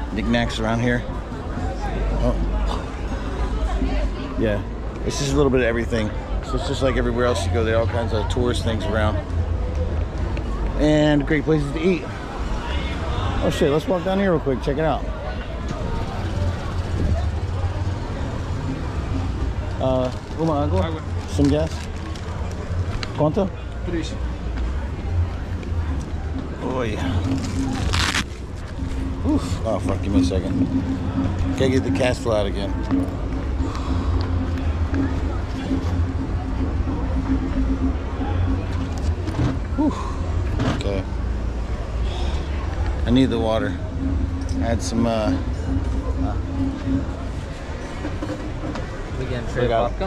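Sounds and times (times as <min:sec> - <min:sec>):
faint voices: 0:00.0 - 0:50.0
low street rumble: 0:00.0 - 0:50.0.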